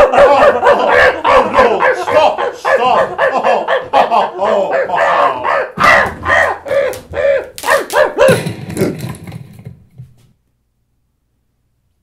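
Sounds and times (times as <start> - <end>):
person making high wordless cries: 6.6 - 7.7.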